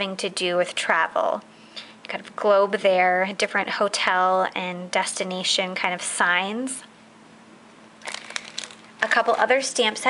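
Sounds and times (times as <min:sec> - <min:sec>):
plastic packaging crinkling: 0:08.0 - 0:10.0.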